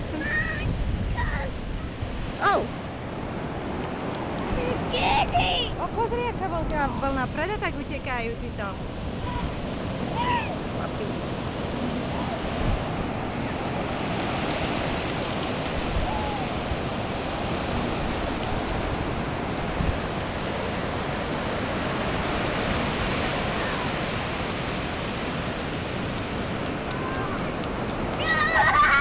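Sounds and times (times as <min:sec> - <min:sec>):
surf waves breaking: 0:00.0 - 0:29.0.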